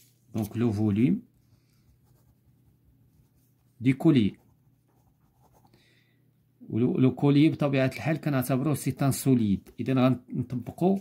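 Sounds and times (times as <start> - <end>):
person speaking: 0.3 - 1.4, 3.2 - 5.7, 6.6 - 11.0
pen scratching on paper: 4.3 - 5.7.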